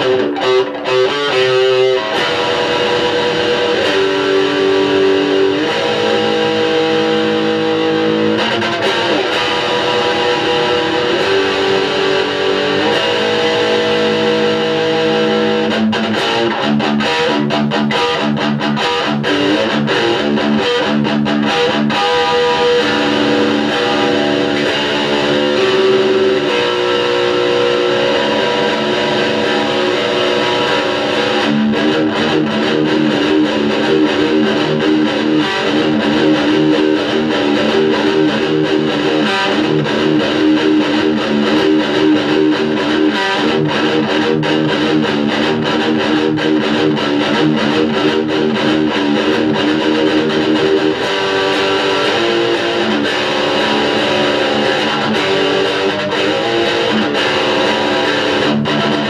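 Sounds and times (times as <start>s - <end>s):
distorted electric guitar riffs: 0.0s - 59.0s.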